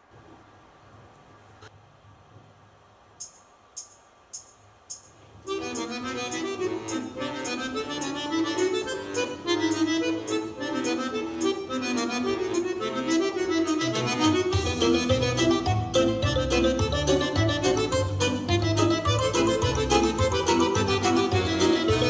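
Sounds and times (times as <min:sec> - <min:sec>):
accordion folk music: 0:05.5 - 0:22.0
bass line: 0:05.6 - 0:22.0.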